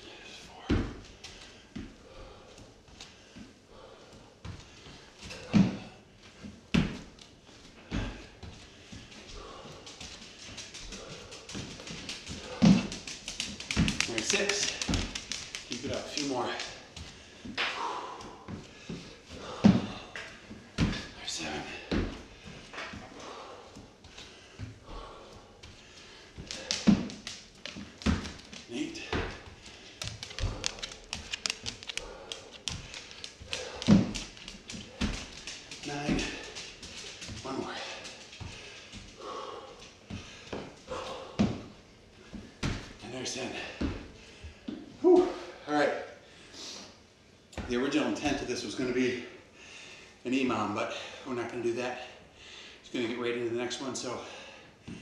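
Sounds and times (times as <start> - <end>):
hard breathing: 0.0 - 45.6, 49.2 - 50.2, 52.0 - 52.9, 54.1 - 55.0
feet and hands thudding on wooden floor: 0.6 - 43.0, 43.6 - 45.5.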